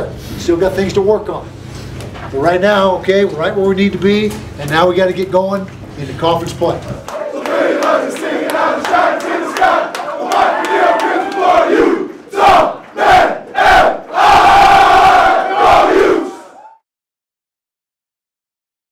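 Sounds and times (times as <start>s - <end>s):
players shouting and chanting: 7.1s - 16.6s.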